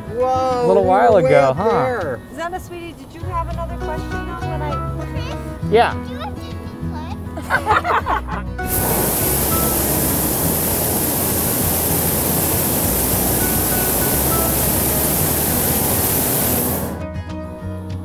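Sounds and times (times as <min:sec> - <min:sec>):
propane burner hissing: 0:08.6 - 0:17.2.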